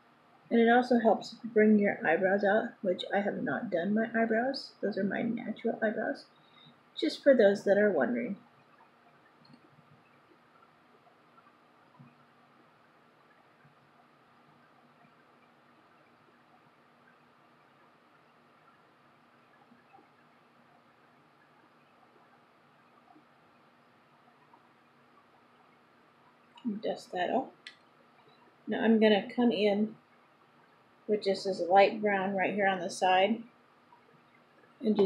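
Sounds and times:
air conditioner hum: 0.0 - 35.0
soft ticks: 8.6 - 18.8.

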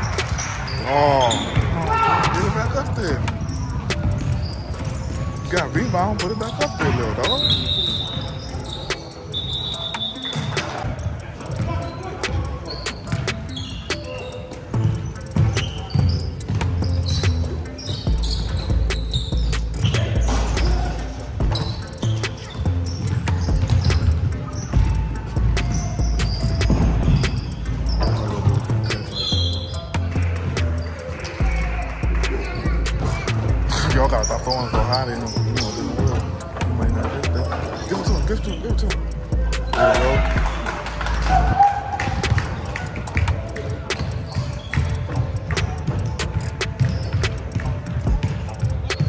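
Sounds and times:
shoe squeaks: 0.0 - 49.0
music with heavy bass: 10.3 - 49.0
basketball dribbling on hardwood: 42.1 - 48.9.

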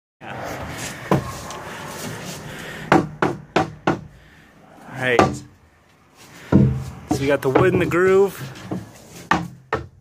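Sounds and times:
knocks on plywood panel: 6.5 - 7.9, 8.7 - 10.0.

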